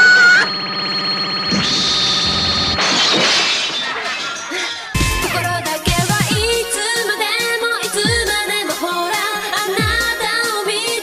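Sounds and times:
shattering crash: 2.7s - 5.5s.

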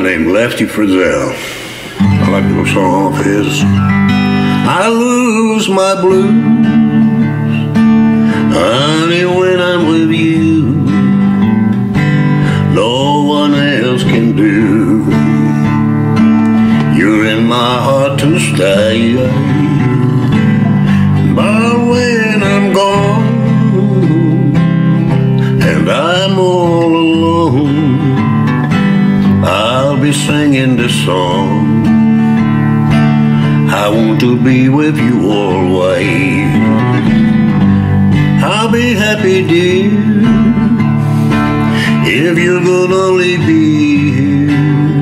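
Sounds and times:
acoustic guitar strumming: 0.0s - 45.0s
man singing: 0.0s - 45.0s.

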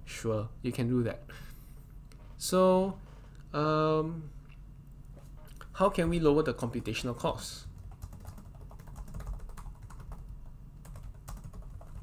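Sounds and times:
typing on computer keyboard: 7.8s - 12.0s.

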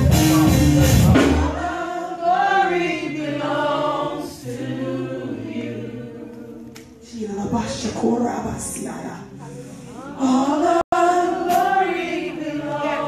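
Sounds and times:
gospel choir singing: 0.0s - 13.0s.

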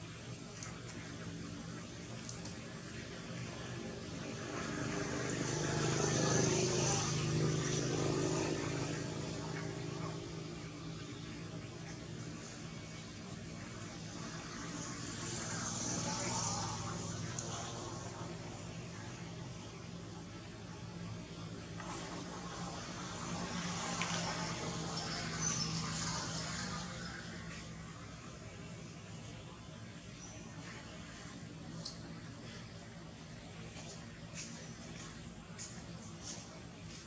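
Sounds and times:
engine hum passing: 2.4s - 31.5s.

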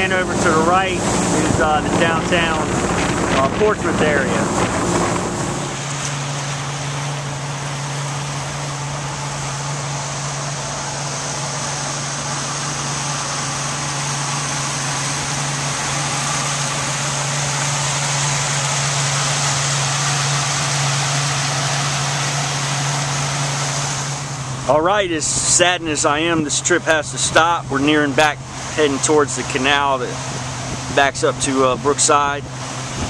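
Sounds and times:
boat motor running: 0.0s - 33.0s.

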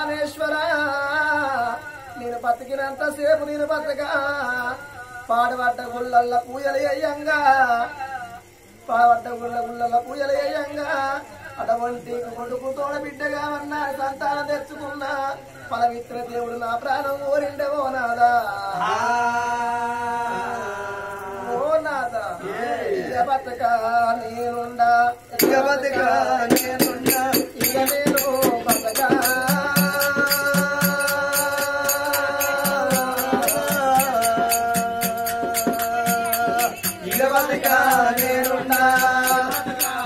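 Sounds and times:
person singing folk narrative: 0.0s - 40.0s
man singing long notes: 25.3s - 40.0s
sharp drum strikes: 25.4s - 40.0s.

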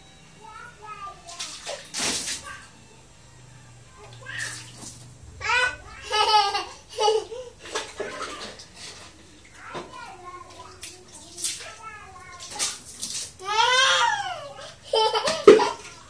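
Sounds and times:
water splashing on tiled floor: 1.3s - 2.6s, 4.2s - 5.0s, 10.6s - 13.9s
child calling out: 3.9s - 4.8s, 5.4s - 6.7s, 13.4s - 14.6s.

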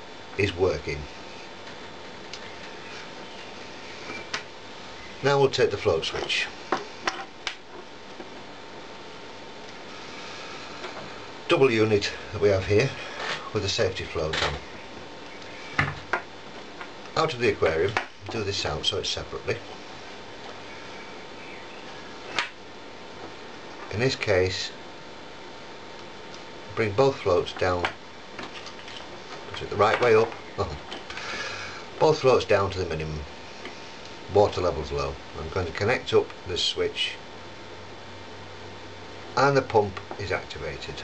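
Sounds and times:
low room hiss: 0.0s - 41.0s.

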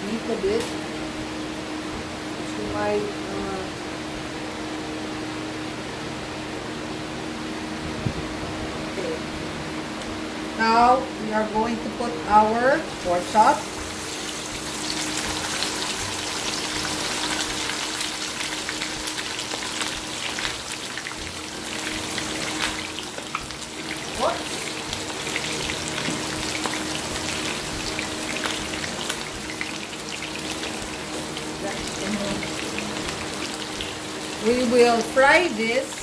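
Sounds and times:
meat sizzling in hot oil: 12.2s - 36.0s.

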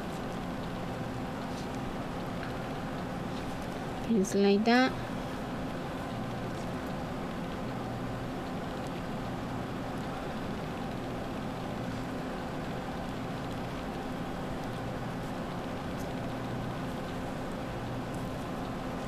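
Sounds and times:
low mechanical hum with buzz: 0.0s - 19.0s.

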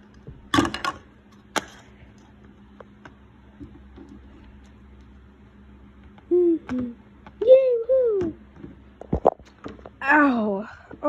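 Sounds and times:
child humming notes: 6.3s - 7.0s.

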